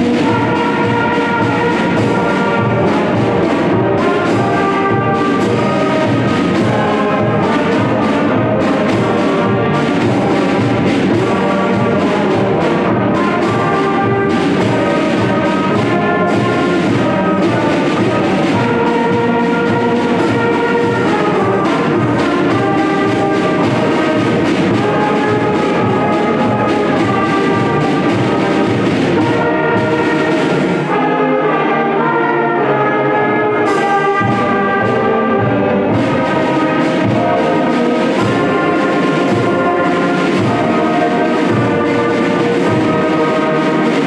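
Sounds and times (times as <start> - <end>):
concert band playing: 0.0 - 44.0.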